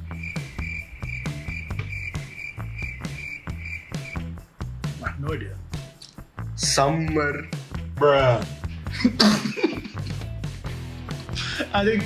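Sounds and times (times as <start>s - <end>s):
crickets chirping: 0.0s - 4.8s
background music with beat: 0.0s - 12.0s.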